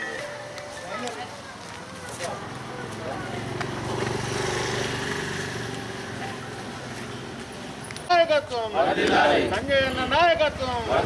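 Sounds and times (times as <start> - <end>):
people talking: 0.0 - 3.6
vehicle engine passing: 2.4 - 7.0.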